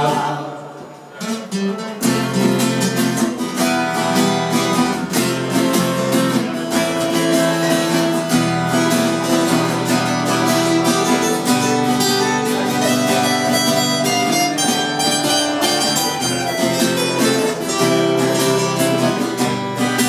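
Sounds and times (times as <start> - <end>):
acoustic guitar strumming chords: 0.0 - 20.0.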